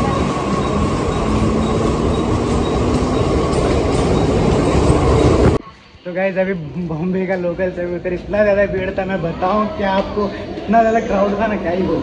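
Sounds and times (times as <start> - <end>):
electric train rail rumble: 0.0 - 5.6.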